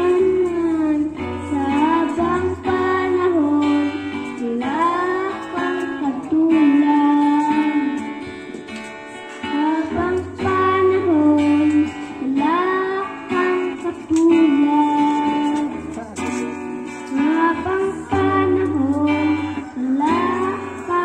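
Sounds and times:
child singing into a microphone: 0:00.0 - 0:21.0
instrumental backing music: 0:00.0 - 0:21.0.

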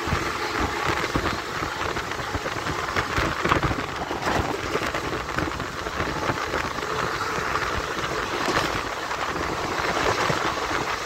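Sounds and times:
freight train passing: 0:00.0 - 0:11.0
train wheels on rail: 0:00.0 - 0:11.0.

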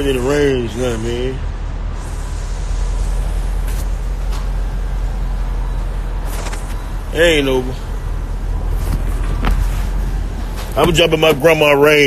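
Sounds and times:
low rumble of vehicles: 0:00.0 - 0:12.0.

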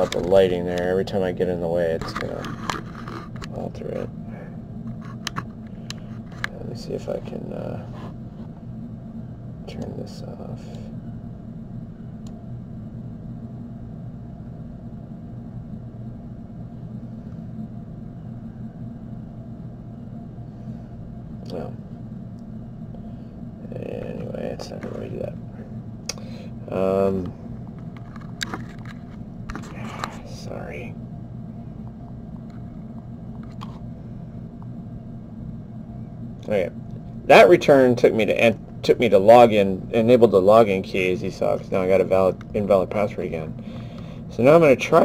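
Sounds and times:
low background hum: 0:00.0 - 0:45.0.

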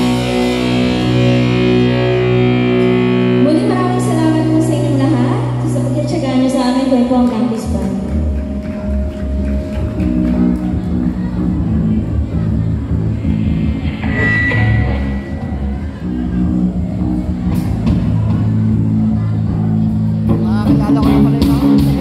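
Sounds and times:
high guitar note held: 0:00.0 - 0:04.7, 0:08.9 - 0:17.9
drums: 0:00.0 - 0:06.0, 0:07.6 - 0:22.0
bass guitar: 0:00.0 - 0:22.0
electric guitars: 0:00.0 - 0:22.0.

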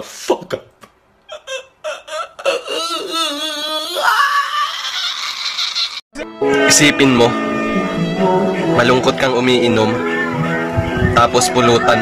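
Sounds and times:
man laughing hysterically: 0:01.3 - 0:06.0.

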